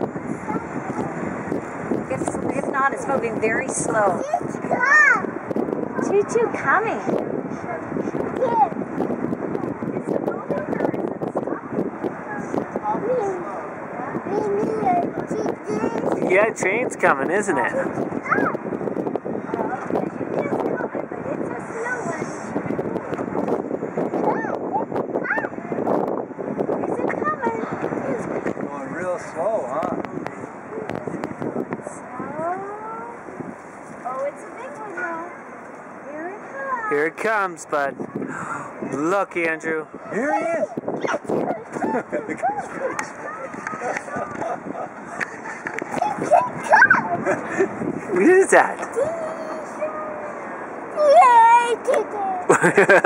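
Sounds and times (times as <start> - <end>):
freight train rumble: 0.0 - 35.2
indistinct voices talking: 0.0 - 52.9
wind on microphone: 0.0 - 53.0.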